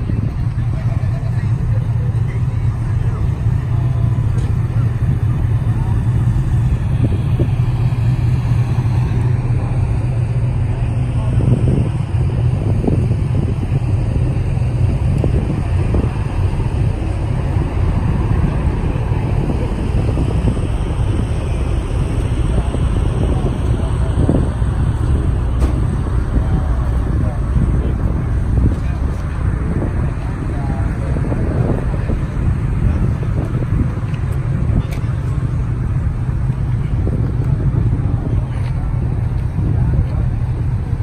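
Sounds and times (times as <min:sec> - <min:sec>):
car engine idling: 0:00.0 - 0:41.0
people talking: 0:00.0 - 0:41.0.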